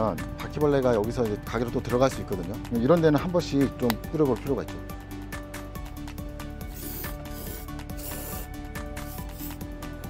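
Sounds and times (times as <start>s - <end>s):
background music with steady beat: 0.0s - 10.0s
aerosol spray can hissing: 6.6s - 9.7s.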